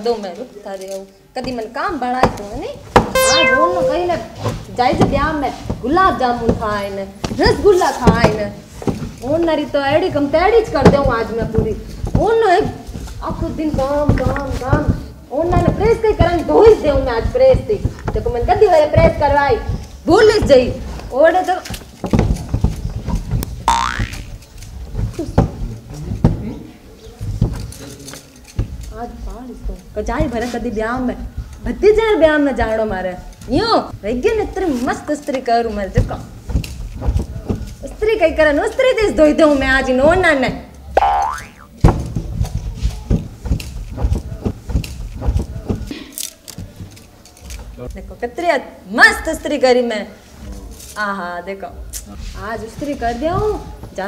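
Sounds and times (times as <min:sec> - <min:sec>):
cartoon boing: 0:03.2 - 0:04.1, 0:23.7 - 0:24.3, 0:41.0 - 0:41.8.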